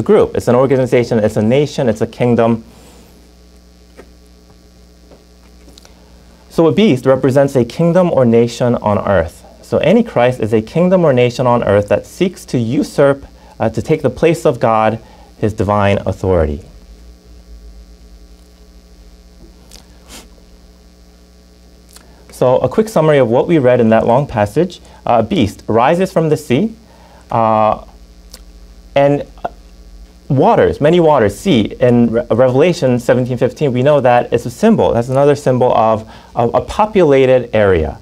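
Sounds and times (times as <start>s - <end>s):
electrical mains hum: 0.0s - 38.0s.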